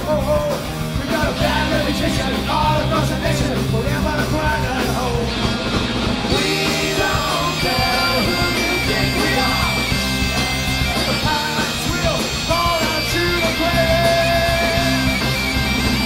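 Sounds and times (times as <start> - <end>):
bass: 0.0 - 16.0
drums: 0.0 - 16.0
electric guitars: 0.0 - 16.0
vocals: 0.0 - 16.0
bagpipes: 7.8 - 16.0.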